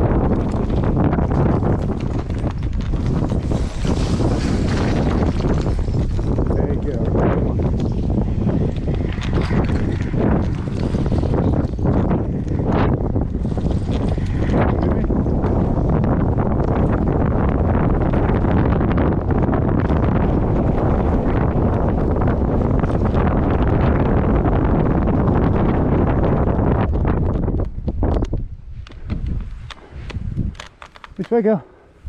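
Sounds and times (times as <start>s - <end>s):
bike tyres rolling on stony trail: 0.0s - 32.0s
wind rushing over microphone: 0.0s - 32.0s.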